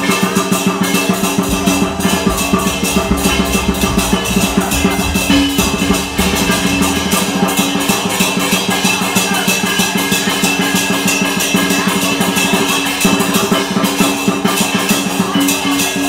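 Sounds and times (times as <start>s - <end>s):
big drum beaten fast: 0.0s - 11.0s
cymbals ringing: 0.0s - 13.6s
gong ringing: 0.8s - 9.2s.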